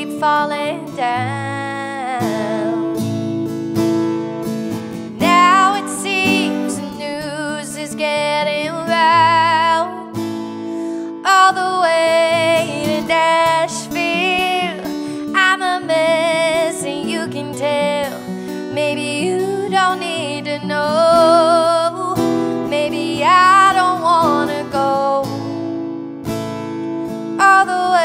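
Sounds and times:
woman singing: 0.0s - 3.6s, 5.1s - 25.6s, 27.3s - 28.0s
strummed acoustic guitar: 0.0s - 28.0s.

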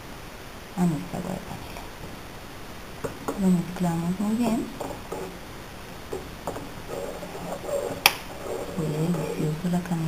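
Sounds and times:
metal spoon stirring in a pot: 6.1s - 9.6s.

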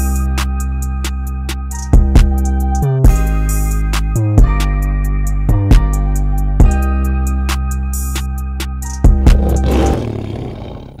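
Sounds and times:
music: 0.0s - 10.4s
lion roar sound effect: 9.2s - 11.0s.

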